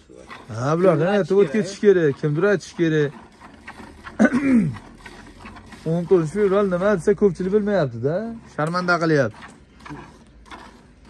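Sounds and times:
milk squirting into metal pail: 0.0 - 11.0.

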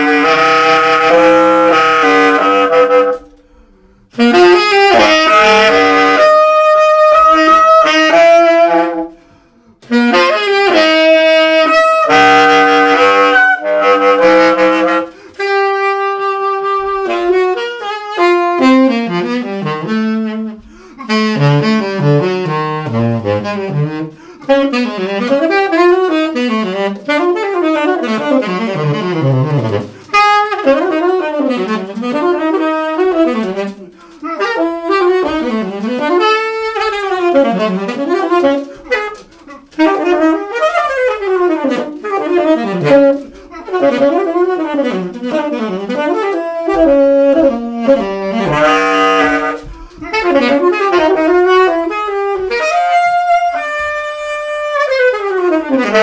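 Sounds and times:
tenor saxophone improvising: 0.0 - 56.0
player breathing: 9.2 - 9.8, 20.6 - 21.0, 24.1 - 24.5.

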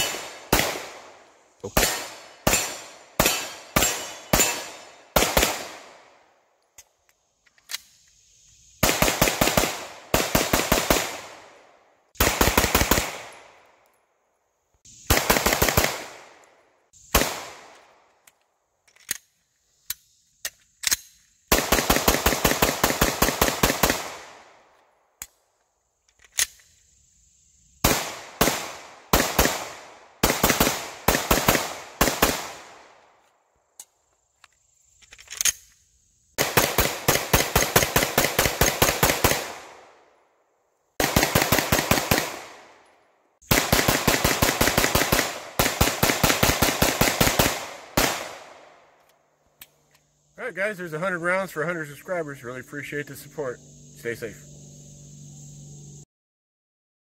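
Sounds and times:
pistol firing rapid shots: 0.0 - 1.1, 1.7 - 6.0, 8.8 - 11.5, 12.2 - 13.4, 15.0 - 16.3, 17.2 - 17.7, 21.5 - 24.5, 27.8 - 32.8, 36.4 - 39.9, 41.0 - 42.7, 43.4 - 48.6
pistol handling clicks: 6.6 - 8.2, 17.7 - 21.3, 26.1 - 26.8.

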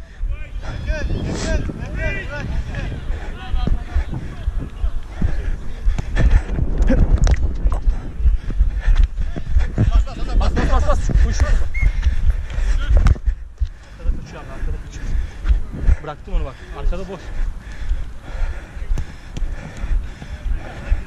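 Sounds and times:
microphone jostling: 0.0 - 17.0
wind rumble on microphone: 0.0 - 21.0
running footsteps on turf: 0.2 - 21.0
players shouting: 0.3 - 5.7.

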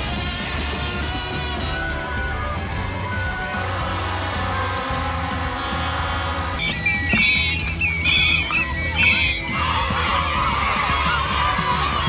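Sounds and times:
background music: 0.0 - 12.0
crowd shouting and cheering: 0.0 - 12.0
toy horns honking: 0.0 - 12.0.

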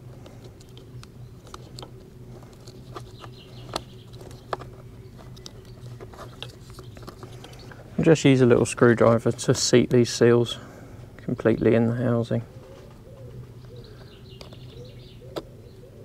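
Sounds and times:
faint low hum: 0.0 - 16.0.

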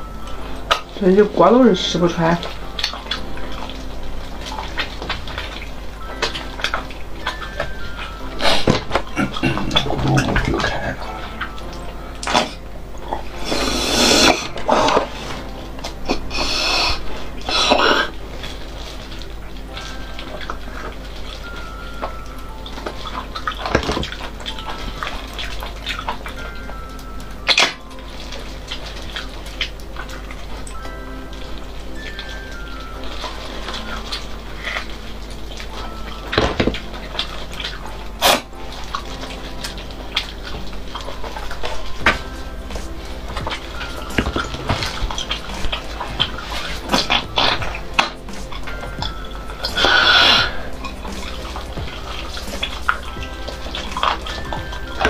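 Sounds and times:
background music: 0.0 - 55.0
wet eating smacks and clicks: 2.4 - 11.6, 32.2 - 55.0
loud slurp: 13.4 - 15.1.

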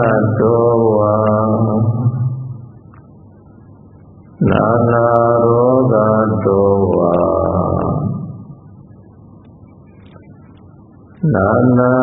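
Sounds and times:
man chanting: 0.0 - 2.7, 4.4 - 8.5, 11.2 - 12.0.

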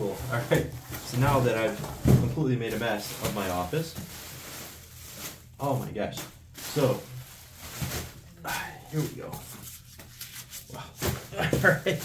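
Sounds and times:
bubble wrap rustling: 0.0 - 12.0.

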